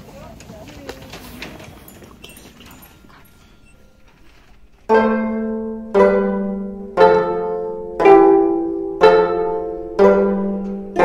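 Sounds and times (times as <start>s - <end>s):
faint wordless voices: 0.0s - 4.2s.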